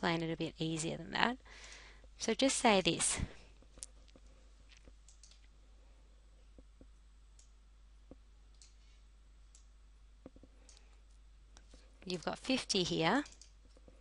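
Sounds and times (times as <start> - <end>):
computer mouse clicks: 3.8 - 5.5, 7.4 - 7.6, 8.5 - 8.8, 9.5 - 9.7, 10.3 - 12.3, 13.2 - 14.0.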